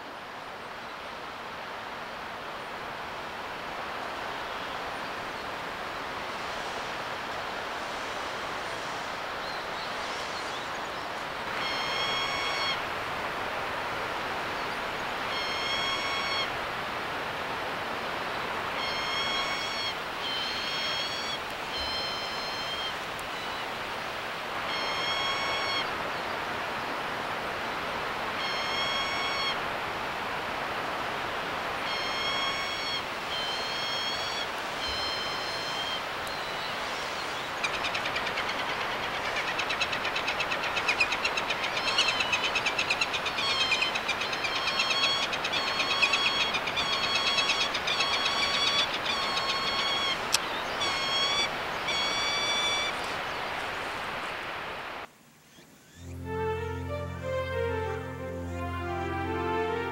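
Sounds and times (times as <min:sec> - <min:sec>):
steady background hiss: 0:00.0 - 0:59.9
falcon whining calls: 0:11.6 - 0:12.8, 0:15.3 - 0:16.5, 0:18.8 - 0:23.6, 0:24.7 - 0:25.9, 0:28.4 - 0:29.6, 0:31.9 - 0:53.0.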